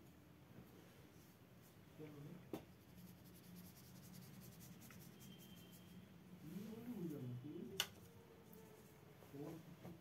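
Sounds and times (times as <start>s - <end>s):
brush dabbing on paper: 2.7s - 6.0s.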